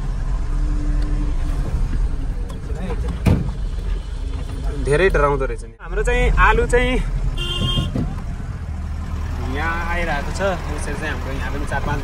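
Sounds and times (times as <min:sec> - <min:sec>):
truck engine running: 0:07.2 - 0:12.0.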